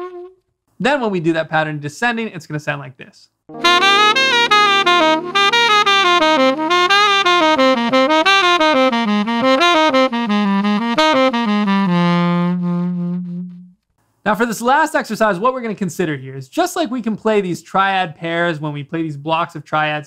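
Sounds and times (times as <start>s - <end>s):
tenor saxophone playing scales: 0.0s - 0.4s, 3.5s - 13.8s
sustained low backing chord: 3.5s - 6.7s.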